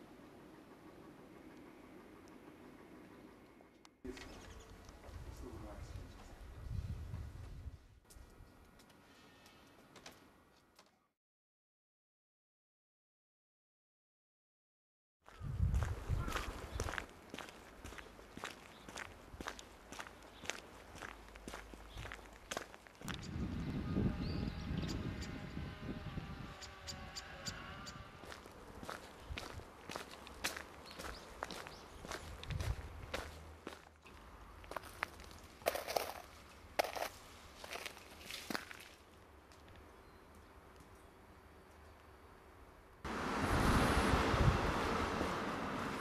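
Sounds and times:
footsteps crunching on road: 15.3s - 23.2s, 28.2s - 39.8s.

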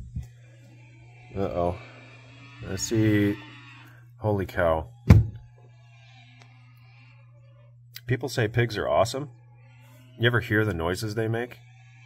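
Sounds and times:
faint low hum: 0.0s - 12.0s
dull thump: 5.1s - 5.4s.

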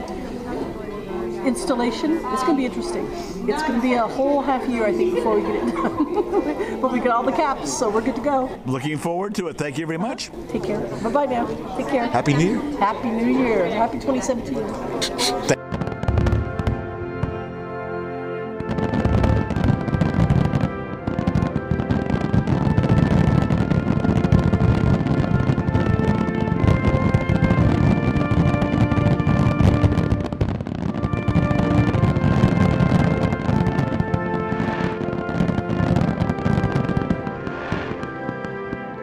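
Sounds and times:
music: 0.0s - 7.9s, 13.1s - 39.0s
fireworks bangs and crackles: 15.2s - 17.6s, 18.6s - 39.0s.

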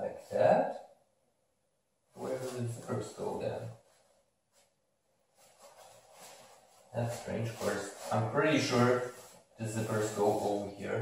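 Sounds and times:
jacket fabric rustling: 2.2s - 10.7s.

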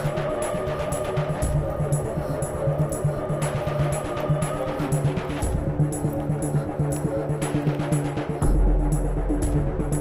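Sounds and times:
film music with percussive beat: 0.0s - 10.0s.

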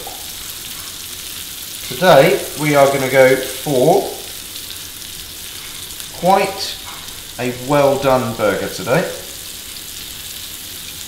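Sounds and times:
patties sizzling in a pan: 0.0s - 11.0s.

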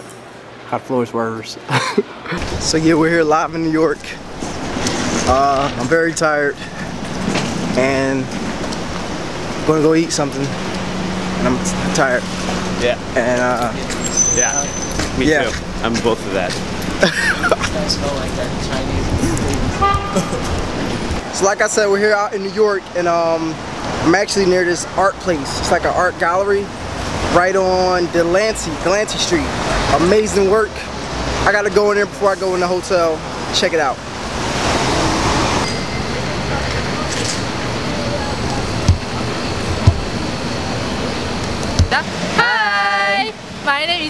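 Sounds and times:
city street traffic rumbling: 0.0s - 44.0s
short car horn toot: 19.8s - 20.4s.

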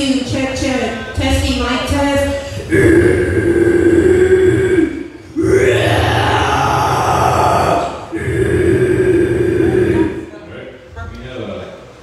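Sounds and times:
woman growling death-metal vocals: 2.4s - 10.5s.

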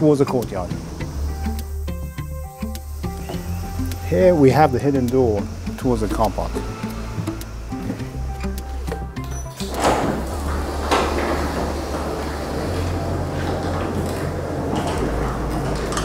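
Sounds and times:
background music: 0.0s - 16.0s
garage door opener running: 0.0s - 16.0s
garage door clunks: 5.5s - 16.0s.

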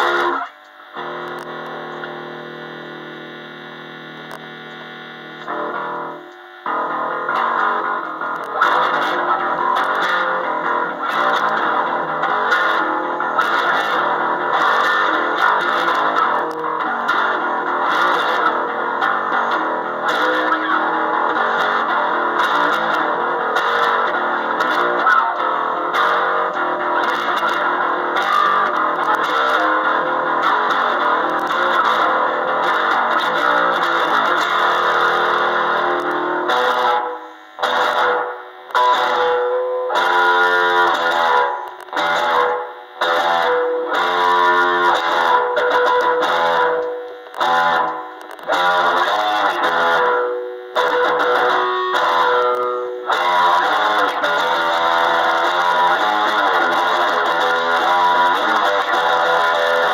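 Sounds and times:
electric bass riff with reverb: 0.0s - 59.9s.

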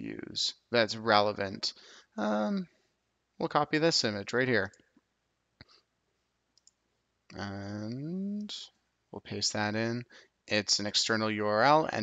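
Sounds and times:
computer mouse clicks: 6.5s - 6.8s.

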